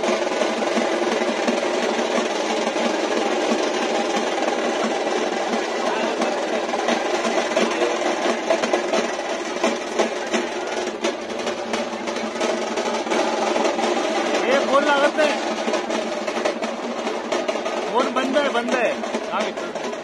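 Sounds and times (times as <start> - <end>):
drumming: 0.0 - 20.0
large crowd noise: 0.0 - 20.0.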